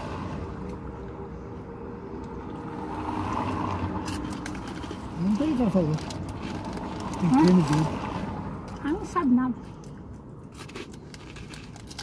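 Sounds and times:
pastry crackling while eaten: 4.0 - 8.8, 9.8 - 12.0.

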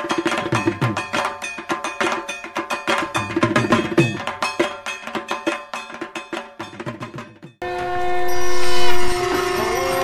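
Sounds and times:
horn-like chord: 7.6 - 10.0.

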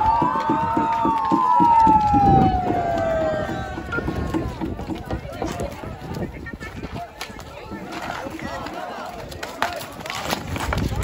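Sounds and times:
people shouting: 0.0 - 6.0, 7.6 - 10.4.

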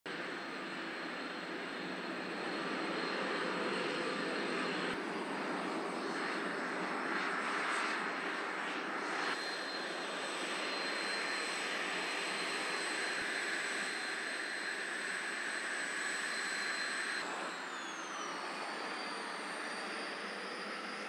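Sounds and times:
jet engines taxiing: 0.1 - 21.0.

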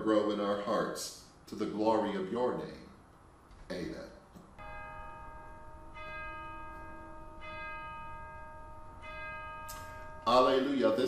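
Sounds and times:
bell ringing: 4.6 - 11.0.

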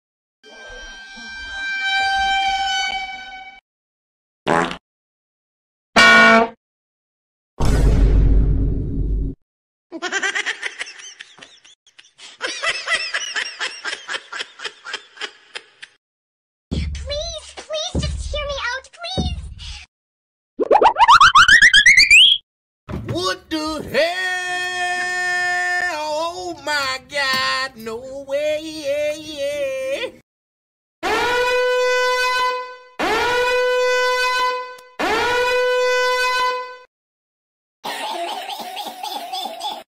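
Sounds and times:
person laughing: 10.0 - 16.0, 37.9 - 39.8
brassy horn blasts: 31.0 - 36.8.

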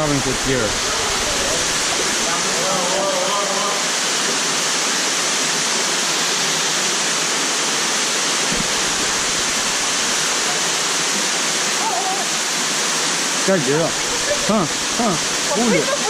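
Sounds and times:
river water rushing: 0.0 - 16.0
low thump: 8.4 - 10.2.

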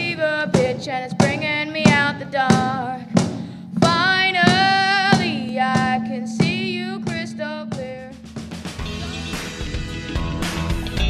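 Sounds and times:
young voice singing: 0.0 - 3.2, 3.8 - 8.2
cajon beat: 0.0 - 11.0.

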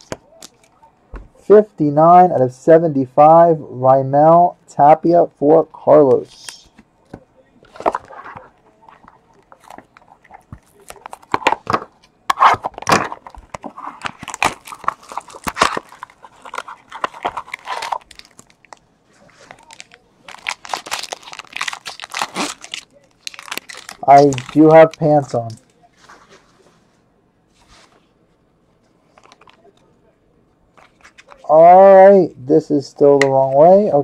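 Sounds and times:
plastic and foil wrapper crinkling: 7.7 - 25.8, 29.0 - 29.8.

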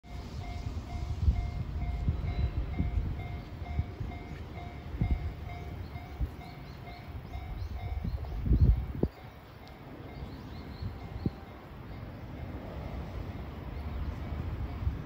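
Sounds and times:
level crossing warning bell: 0.0 - 15.0
wind buffeting microphone: 0.1 - 15.0.

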